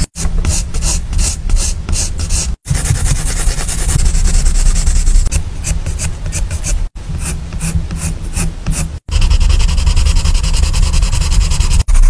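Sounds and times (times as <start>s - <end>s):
pencil shading on paper: 0.0s - 12.0s.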